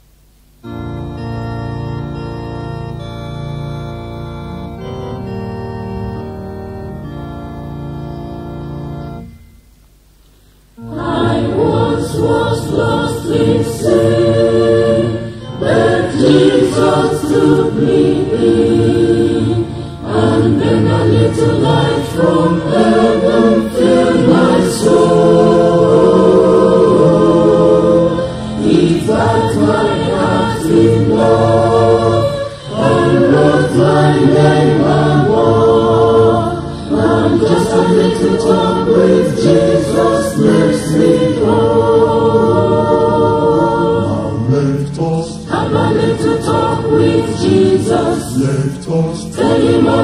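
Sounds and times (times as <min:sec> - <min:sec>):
church choir singing a hymn: 0:10.8 - 0:50.0.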